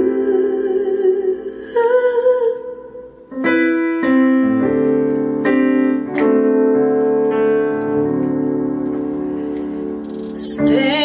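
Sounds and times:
electric piano chords: 0:03.3 - 0:11.0.

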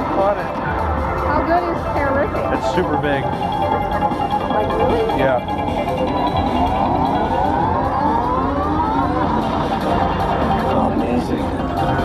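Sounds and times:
slot machine rising tones: 0:02.6 - 0:12.0.

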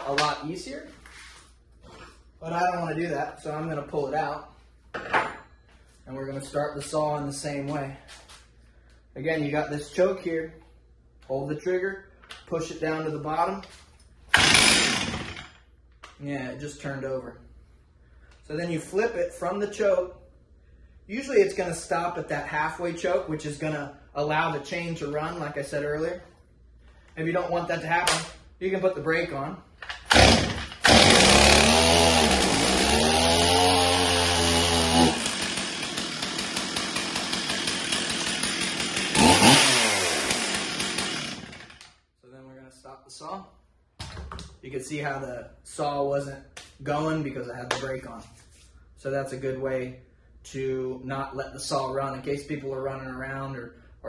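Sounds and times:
chainsaw pull-start: 0:14.3 - 0:15.6, 0:29.9 - 0:42.0.

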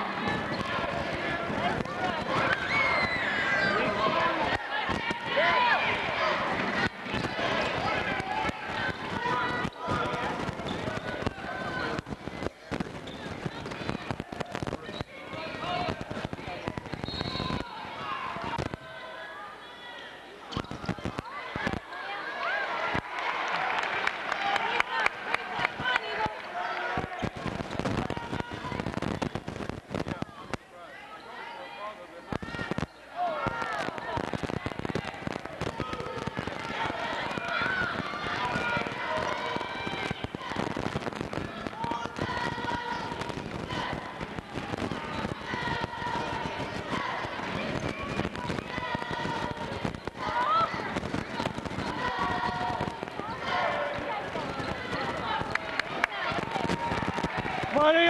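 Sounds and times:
crowd voices and shouting: 0:00.0 - 0:58.0.

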